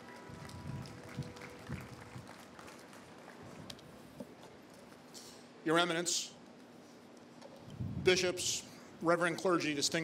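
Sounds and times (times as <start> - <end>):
light applause: 0.0 - 3.7.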